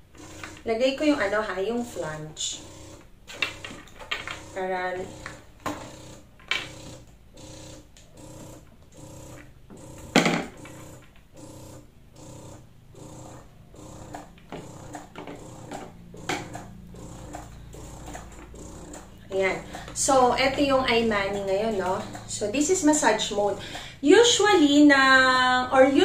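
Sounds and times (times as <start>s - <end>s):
breast pump motor pulsing: 0.0s - 24.8s.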